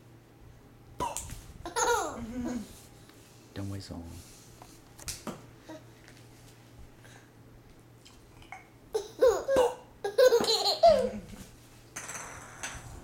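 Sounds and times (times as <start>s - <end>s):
baby laughing: 1.7s - 2.7s, 8.9s - 11.4s.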